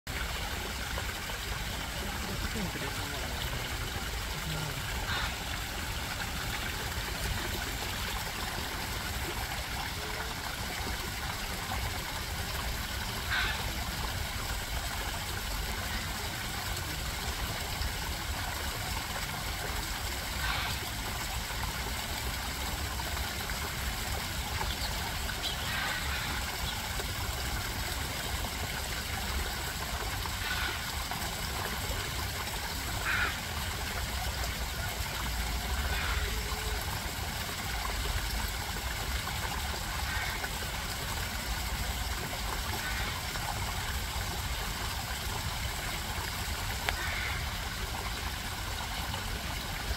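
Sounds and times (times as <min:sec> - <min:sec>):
trickling running water: 0:00.1 - 0:49.9.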